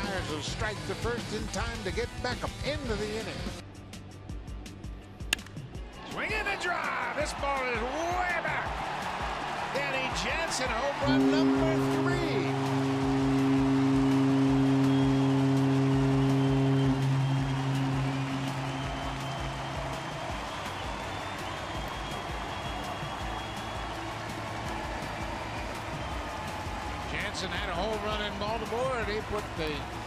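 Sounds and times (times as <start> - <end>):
crowd cheering: 5.8 - 30.0
stadium horn: 9.8 - 30.0.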